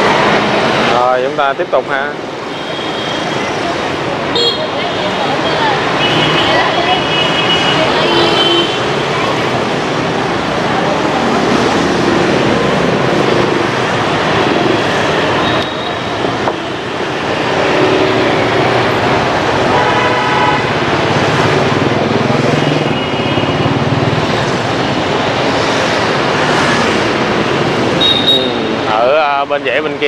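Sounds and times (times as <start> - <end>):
motorbike traffic: 0.0 - 30.0
vehicle horn honks: 6.0 - 8.9, 19.7 - 20.7, 28.0 - 28.8.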